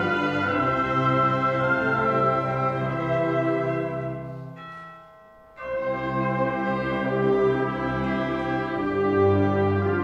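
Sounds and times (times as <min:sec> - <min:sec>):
wind band playing held chords: 0:00.0 - 0:04.4, 0:05.6 - 0:10.0.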